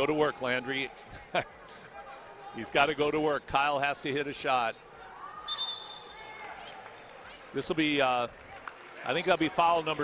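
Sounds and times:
crowd murmur: 0.0 - 3.4
referee's whistle: 5.4 - 6.2.

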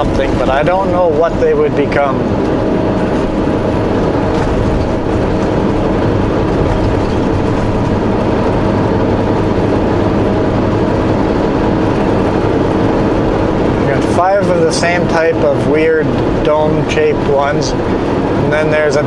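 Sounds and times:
truck diesel engine drone: 0.0 - 19.0
tyre and road noise: 0.0 - 19.0.

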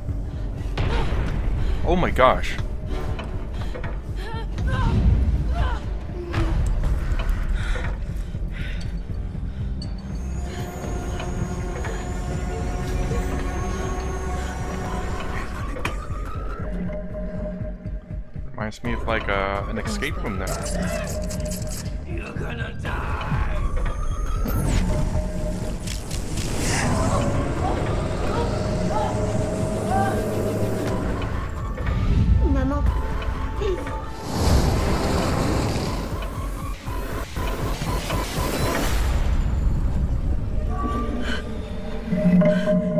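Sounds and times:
trailer music: 0.0 - 42.9
deep rumbling drone: 23.0 - 37.6.

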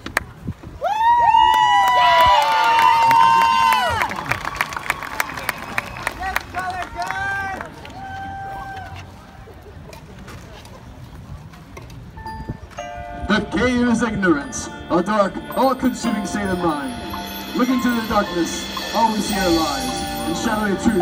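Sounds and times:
spectators cheering and whooping: 0.8 - 9.3.

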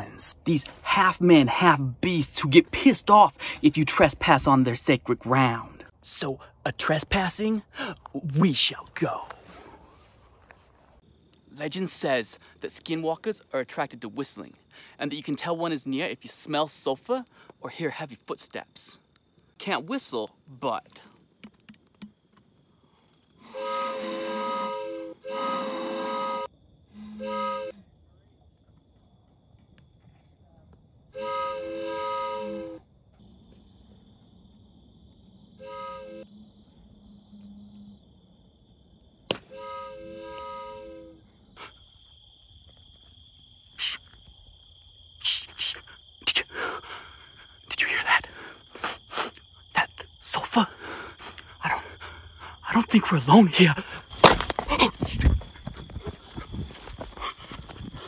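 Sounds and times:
hooting tones blown across bottle: 23.4 - 27.8, 31.2 - 32.8, 35.6 - 36.3, 39.5 - 41.2.

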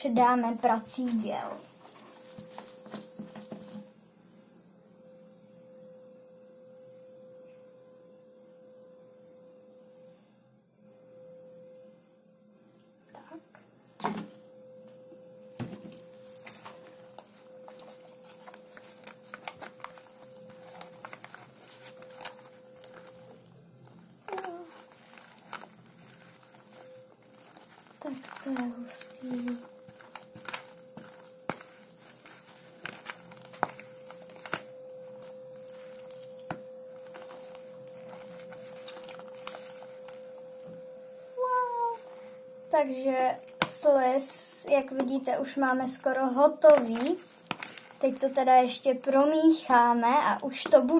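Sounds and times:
faint steady hum: 0.0 - 50.9
small clicks and crinkles: 1.6 - 3.9, 15.8 - 41.0, 44.7 - 50.9
hands squishing slime: 24.3 - 40.2, 46.6 - 48.6.

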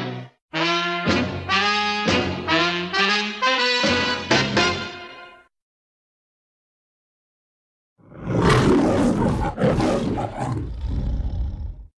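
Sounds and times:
lion roaring: 8.0 - 11.9.

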